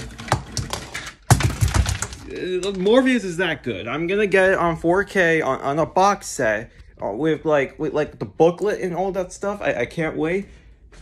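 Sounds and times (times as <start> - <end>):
plastic toys clattering: 0.0 - 3.1.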